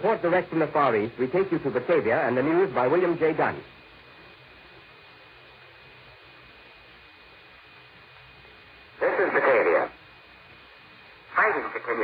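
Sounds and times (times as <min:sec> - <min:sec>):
radio hiss: 0:00.0 - 0:12.0
man speaking over radio: 0:09.0 - 0:10.0, 0:11.3 - 0:12.0.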